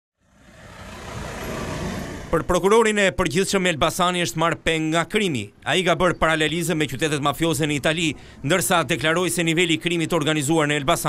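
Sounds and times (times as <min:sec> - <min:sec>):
cars driving past: 0:00.2 - 0:03.7.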